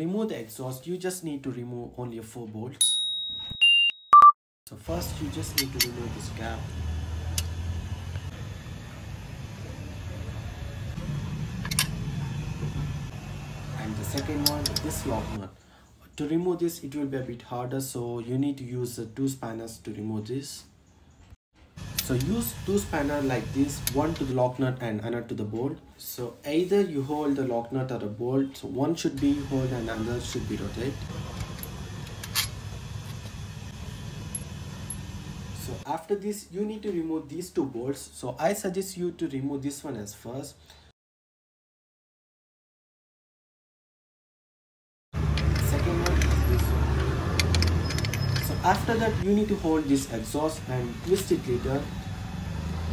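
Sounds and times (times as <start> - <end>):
spanner knocking against metal: 14.1 - 15.0, 47.3 - 48.6
man speaking: 48.4 - 51.9.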